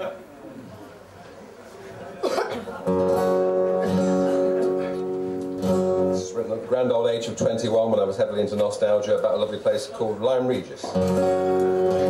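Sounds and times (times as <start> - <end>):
acoustic guitar strumming: 2.8 - 6.7, 10.9 - 12.0.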